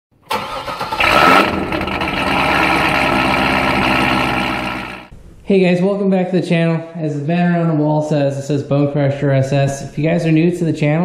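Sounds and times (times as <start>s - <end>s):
car engine starting and idling: 0.2s - 5.4s.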